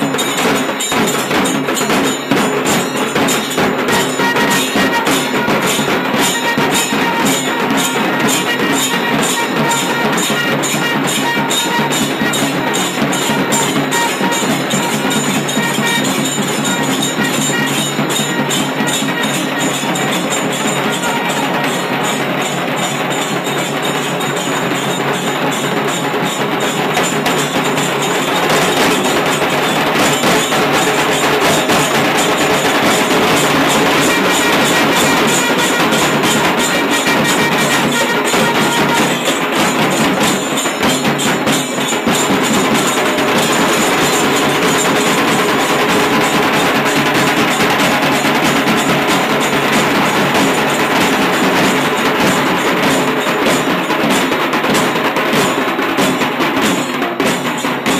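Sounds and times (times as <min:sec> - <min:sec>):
large drums beaten fast: 0:00.0 - 0:57.9.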